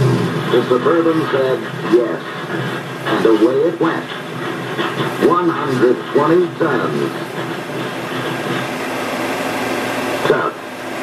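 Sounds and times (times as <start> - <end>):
box cars rumbling on track: 0.0 - 11.0
film soundtrack hiss: 0.0 - 11.0.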